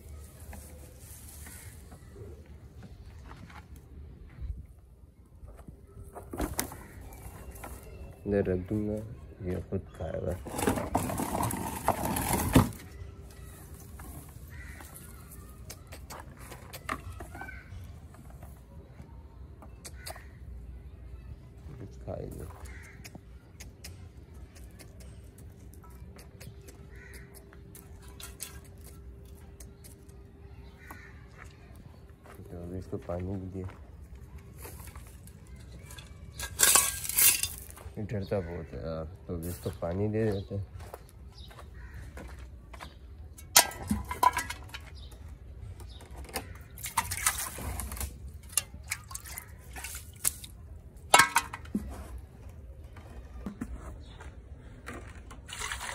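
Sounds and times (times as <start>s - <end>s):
sheep hooves on stony dirt: 0.4s - 4.6s, 21.8s - 36.4s, 39.2s - 43.4s
water dripping in metal bowl: 48.4s - 50.5s.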